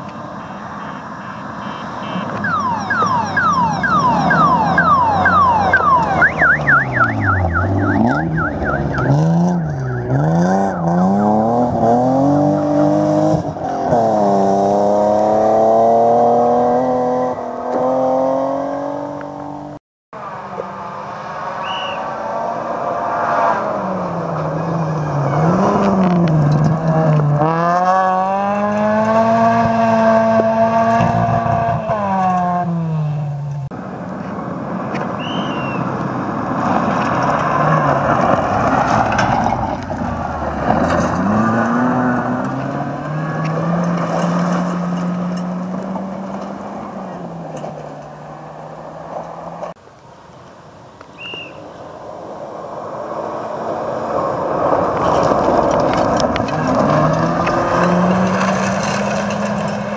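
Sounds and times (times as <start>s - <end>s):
rally car engine revving: 2.4s - 33.8s, 34.7s - 49.8s, 52.7s - 59.9s.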